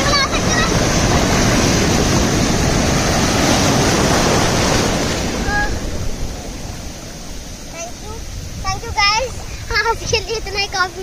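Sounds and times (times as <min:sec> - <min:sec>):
sea waves breaking: 0:00.0 - 0:11.0.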